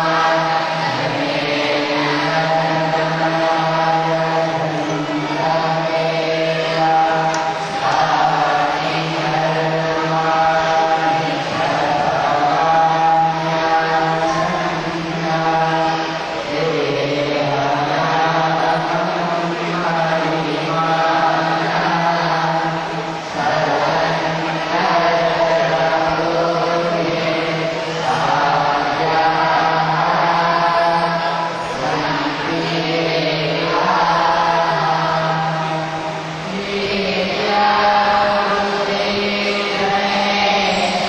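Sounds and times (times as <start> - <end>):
group of voices chanting: 0.0 - 41.0
steady drone: 0.0 - 41.0.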